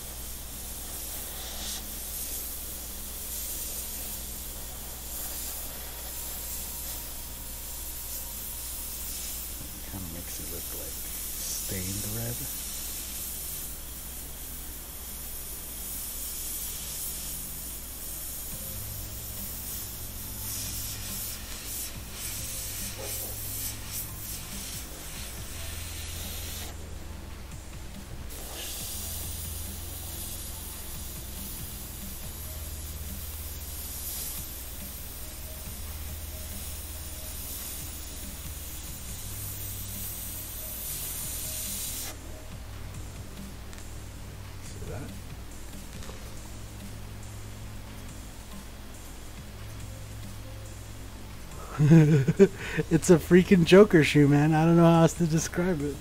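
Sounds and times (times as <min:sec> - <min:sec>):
airbrush spraying hiss: 0:00.0 - 0:56.0.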